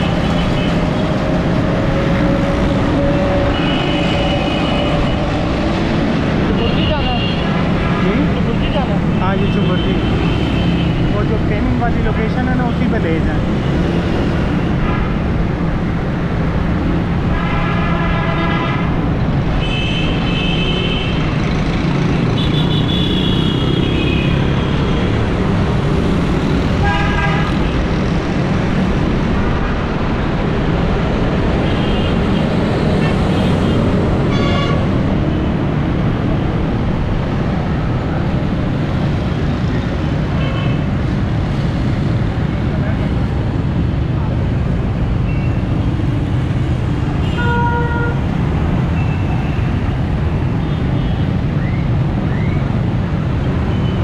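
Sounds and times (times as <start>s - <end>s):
road noise: 0.0s - 54.0s
car horns honking: 33.0s - 34.9s, 47.2s - 48.2s.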